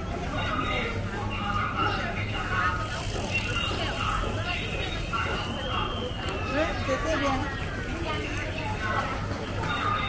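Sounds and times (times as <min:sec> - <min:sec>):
low hum of street noise: 0:00.0 - 0:10.0
people and children talking: 0:00.0 - 0:10.0.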